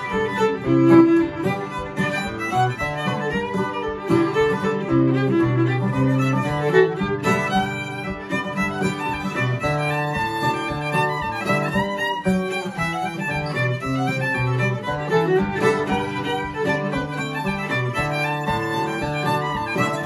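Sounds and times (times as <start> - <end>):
acoustic guitar rhythm: 0.0 - 20.0
fiddle melody: 0.0 - 20.0.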